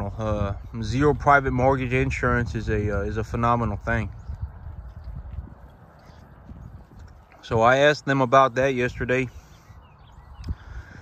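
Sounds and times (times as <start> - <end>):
wind rumble on microphone: 0.0 - 11.0
cattle tearing and crunching grass: 4.6 - 7.6.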